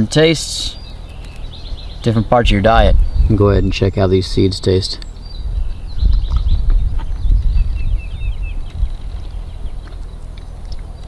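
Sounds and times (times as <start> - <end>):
wind rumbling on microphone: 0.7 - 11.0
seeds being bitten and chewed: 8.6 - 11.0.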